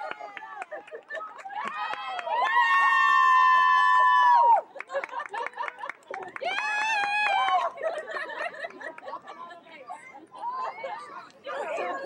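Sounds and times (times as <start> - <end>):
people chattering: 0.0 - 3.7, 4.3 - 12.0.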